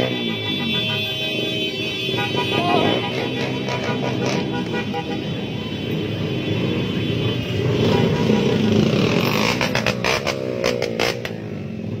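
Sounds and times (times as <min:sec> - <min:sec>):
motorcycle engines revving: 0:00.0 - 0:12.0.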